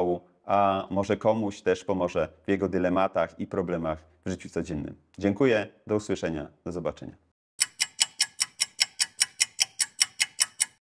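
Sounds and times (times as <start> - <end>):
clock ticking: 7.6 - 10.8.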